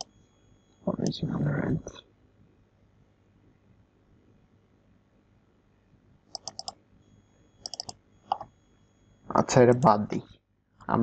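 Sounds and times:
computer keyboard clicking: 6.4 - 6.8, 7.6 - 8.4.

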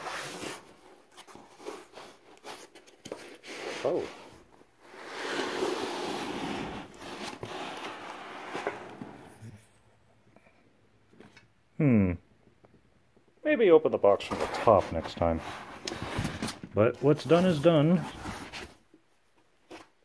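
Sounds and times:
foam rubbing against cardboard: 4.9 - 9.2.

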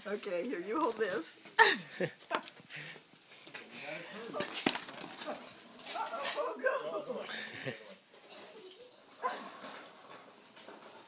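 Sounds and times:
family voices and laughter: 0.2 - 9.2.

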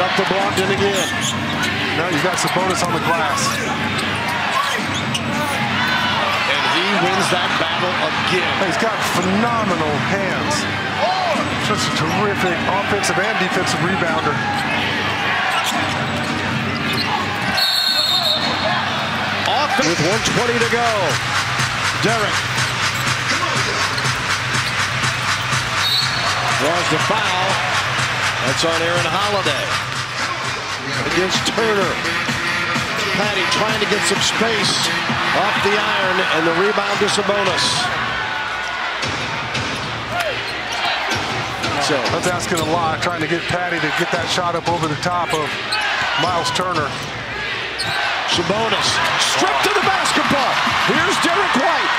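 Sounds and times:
arena crowd noise: 0.0 - 51.9
referee's whistle: 17.5 - 18.7, 25.8 - 26.4.

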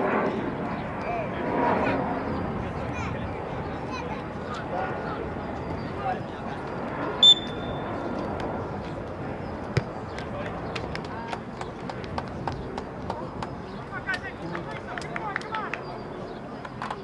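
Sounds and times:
referee's whistle blast: 7.2 - 7.8
soccer ball kicked: 9.7 - 10.0.

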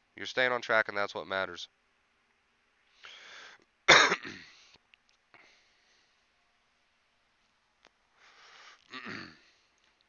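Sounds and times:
man breathing in: 2.9 - 3.6, 4.5 - 6.2, 8.1 - 9.8
man coughing: 3.9 - 4.6, 8.9 - 9.5.

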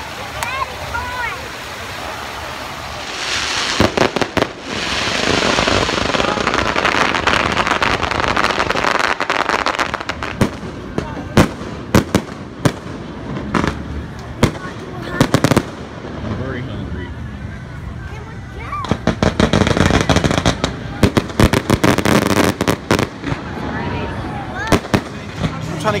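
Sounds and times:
fountain water spraying: 0.0 - 26.0.

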